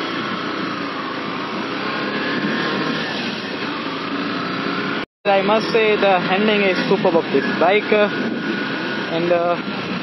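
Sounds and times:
motorcycle engine pulling away: 0.0s - 9.0s.

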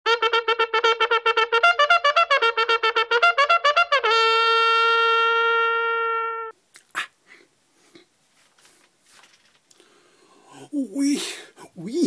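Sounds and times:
held brass note: 0.1s - 6.5s.

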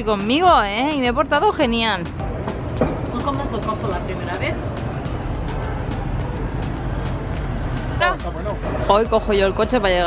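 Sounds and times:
traffic rumble: 0.0s - 10.0s.

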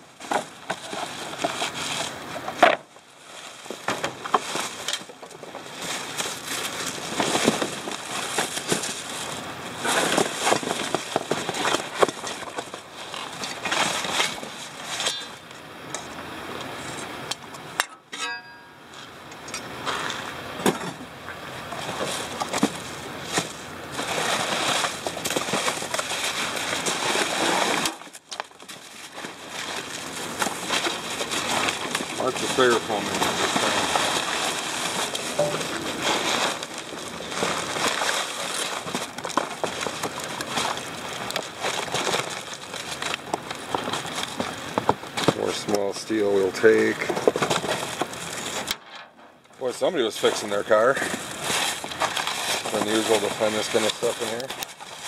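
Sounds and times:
plastic bags rustling: 0.0s - 15.6s, 19.9s - 49.0s, 49.6s - 55.0s
knocks and clinks: 17.8s - 18.8s.

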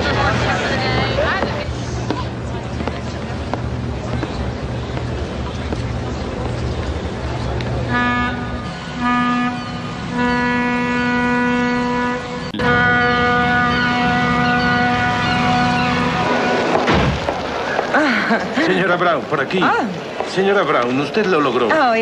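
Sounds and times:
steady low rumble: 0.0s - 20.4s
ship's horn blasts: 7.8s - 17.2s.

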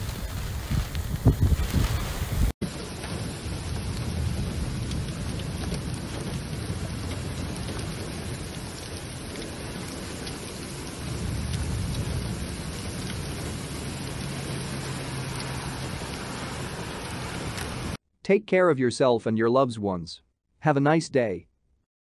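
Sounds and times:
heavy rain pouring: 0.0s - 18.0s.

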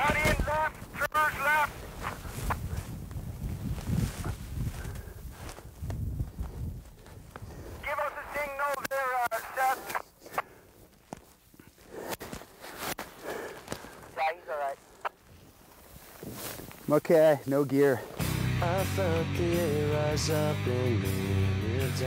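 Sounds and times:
sharp clicks: 8.7s - 10.5s.

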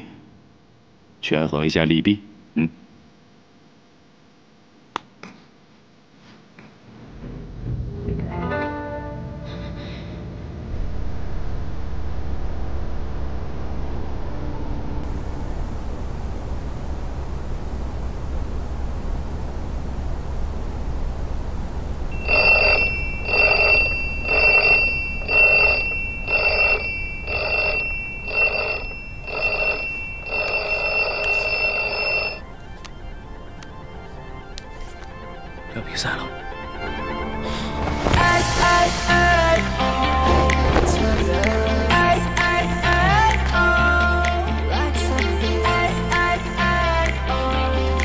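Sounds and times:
low steady hum: 9.2s - 40.0s
smartphone alarm beeping: 22.2s - 32.7s.

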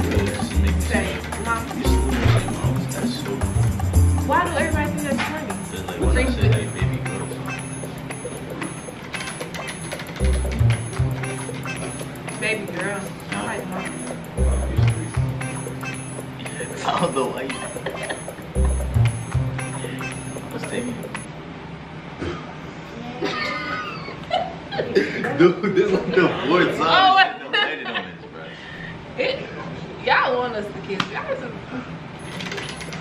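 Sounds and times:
prize wheel ticking: 0.0s - 21.3s, 32.2s - 33.0s.

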